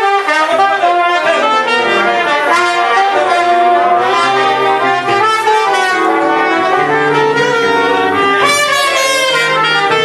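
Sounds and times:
saxophone: 0.0 - 10.0
trumpet: 0.0 - 10.0.

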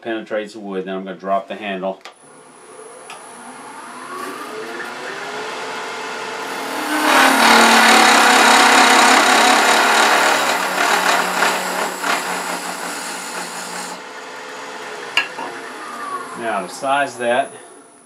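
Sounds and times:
wood lathe whine: 2.4 - 18.0
turning tool rasping on wood: 6.4 - 14.0.

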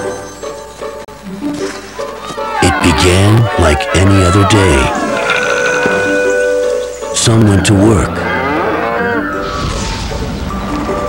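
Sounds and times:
cow mooing: 2.2 - 6.7, 8.0 - 9.4.

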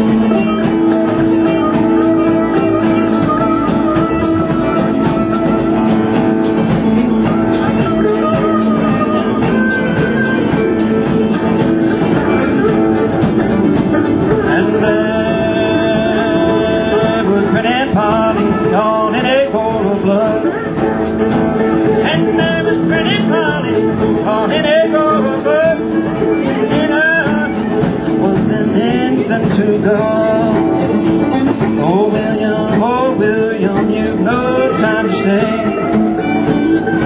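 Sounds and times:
acoustic string band playing: 0.0 - 37.0
mandolin: 0.0 - 37.0
sliding high lead melody: 0.0 - 37.0
strummed acoustic guitars: 0.0 - 37.0.

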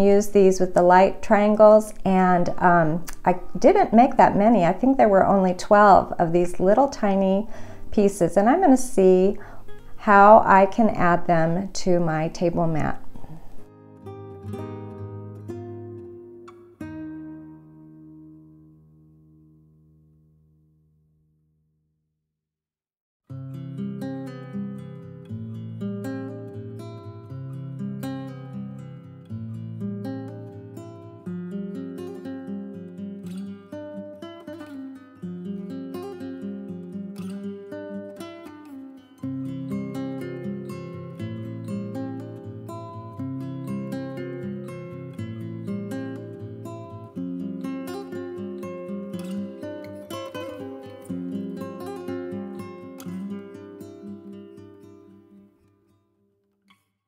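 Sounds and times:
acoustic guitar playing: 0.0 - 21.6, 23.3 - 56.9.

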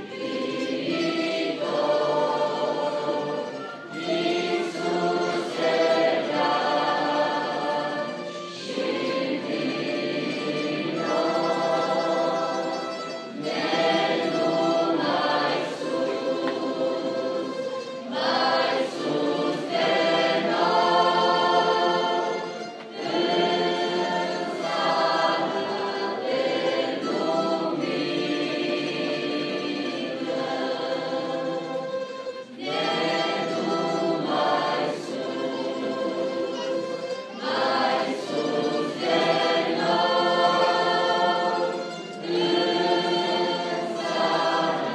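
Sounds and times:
choir singing a hymn: 0.0 - 44.9
orchestral accompaniment: 0.0 - 44.9.

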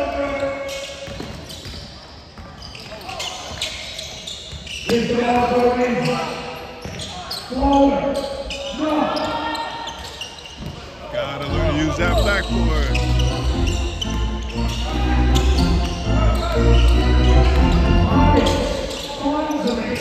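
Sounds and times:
voices calling: 7.0 - 20.0.

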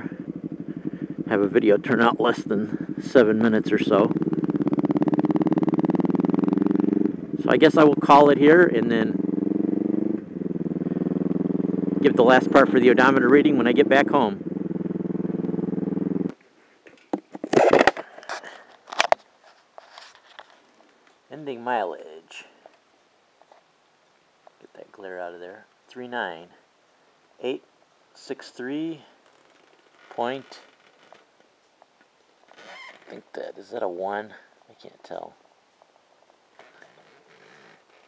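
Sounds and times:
motorcycle engine running: 0.0 - 16.3.

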